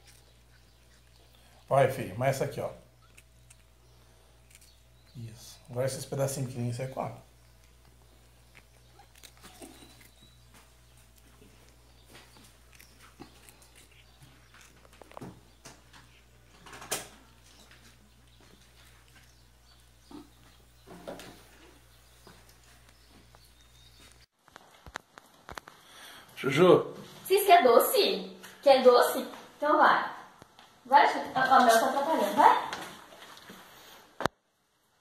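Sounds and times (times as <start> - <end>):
cat chewing crunchy biscuits: 0.0 - 1.7, 2.3 - 24.2.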